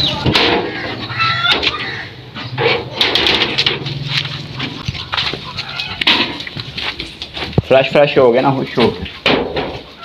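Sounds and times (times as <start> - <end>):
scuffling hooves and footsteps: 0.0 - 10.0.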